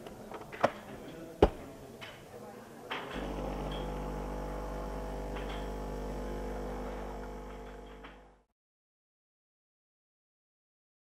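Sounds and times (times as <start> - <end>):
espresso machine switch click: 3.2 - 6.1
espresso machine pump humming: 3.2 - 8.5.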